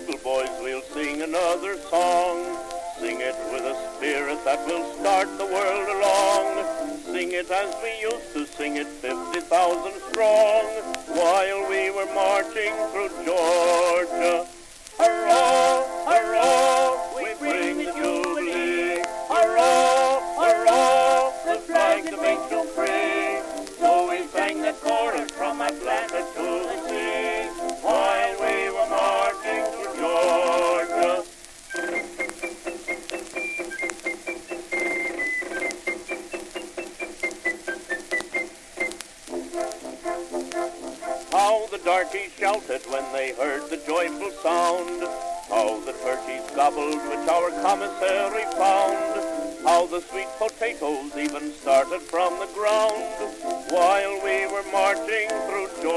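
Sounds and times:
men singing with vibrato: 0:00.0 - 0:31.4, 0:41.3 - 0:55.9
high piping tune: 0:00.0 - 0:55.9
band accompaniment: 0:15.0 - 0:55.9.

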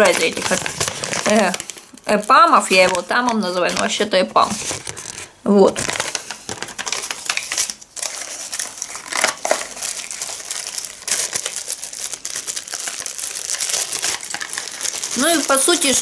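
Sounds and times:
packaging crinkling: 0:00.0 - 0:16.0.

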